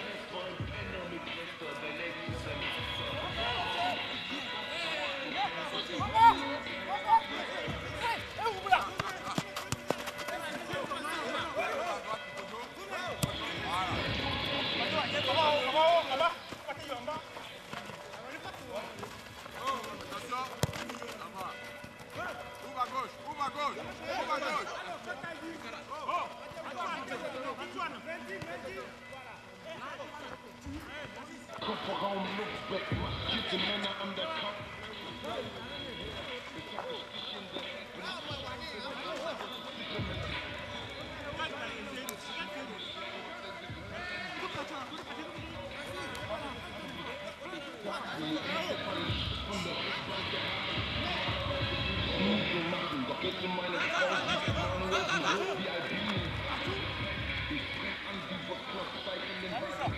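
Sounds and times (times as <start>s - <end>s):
players shouting: 2.7s - 28.4s.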